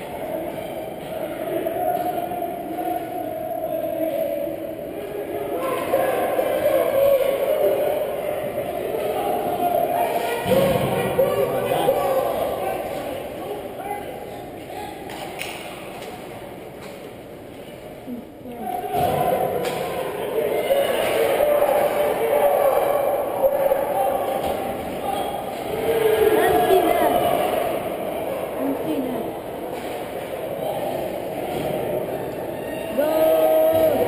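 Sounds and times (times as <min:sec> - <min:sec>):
indistinct voices echoing: 0:00.0 - 0:34.0.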